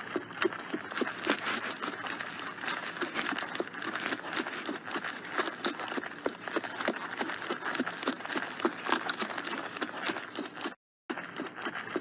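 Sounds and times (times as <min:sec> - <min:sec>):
horse hoofbeats trotting: 0:00.0 - 0:12.0.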